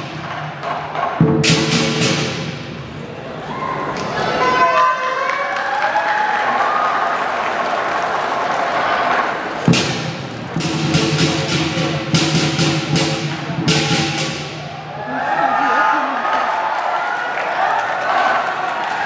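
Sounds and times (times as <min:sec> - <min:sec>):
heavy drum thud: 0:00.0 - 0:02.8, 0:09.7 - 0:14.7
crowd voices: 0:02.6 - 0:10.7, 0:13.4 - 0:19.0.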